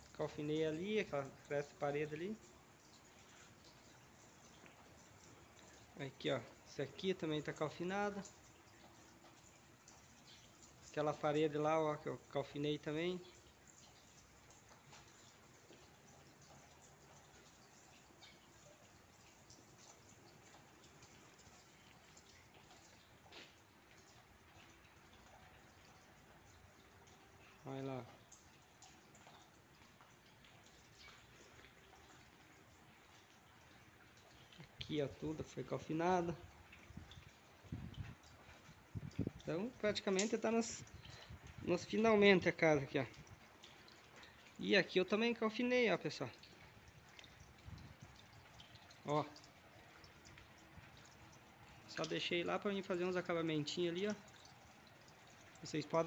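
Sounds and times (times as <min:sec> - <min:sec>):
faint rain patter: 0:00.0 - 0:56.0
water drips: 0:00.0 - 0:56.0.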